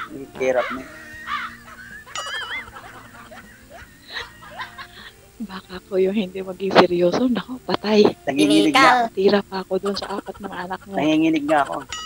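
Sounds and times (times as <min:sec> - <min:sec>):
faint background music: 0:00.0 - 0:12.0
woman laughing: 0:00.4 - 0:05.2, 0:09.8 - 0:12.0.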